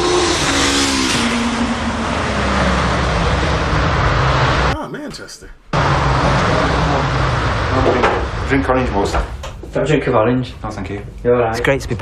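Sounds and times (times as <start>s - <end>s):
car road noise: 0.0s - 4.8s, 5.7s - 9.5s
car engine falling in pitch: 5.7s - 9.4s.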